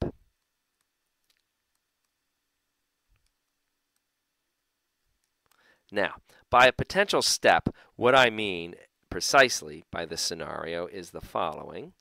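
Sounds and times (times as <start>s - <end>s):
person speaking: 5.9s - 12.0s.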